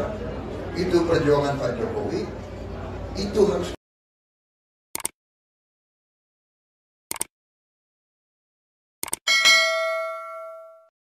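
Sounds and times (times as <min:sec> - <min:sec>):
quick clicks: 0:05.0 - 0:05.2, 0:07.1 - 0:07.3, 0:09.0 - 0:09.2
bell ding: 0:09.3 - 0:10.9.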